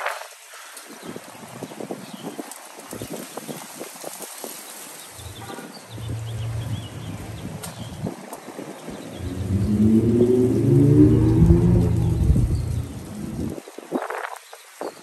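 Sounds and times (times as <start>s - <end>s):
loud low rumble: 6.0s - 7.7s, 9.2s - 13.6s.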